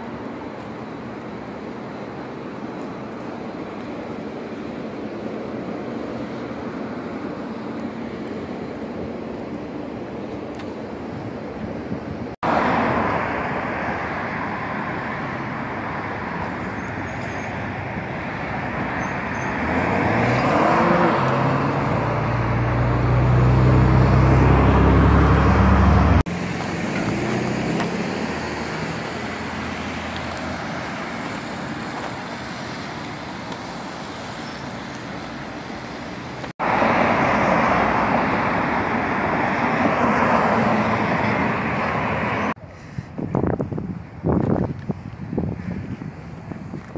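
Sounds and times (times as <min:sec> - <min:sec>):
cars passing: 0:00.0 - 0:46.9
car engine accelerating: 0:19.4 - 0:30.7.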